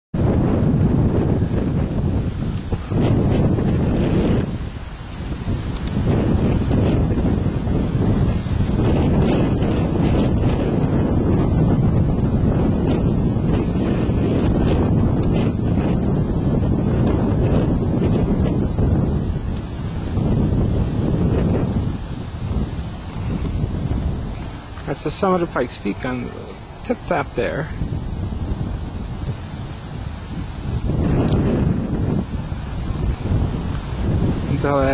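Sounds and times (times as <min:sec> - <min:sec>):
wind buffeting microphone: 0:00.1 - 0:34.9.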